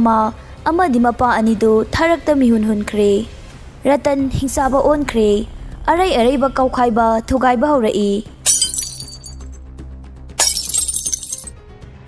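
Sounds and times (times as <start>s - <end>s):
low sustained music: 0.0s - 8.6s
glass shattering: 8.4s - 9.6s, 10.4s - 11.5s.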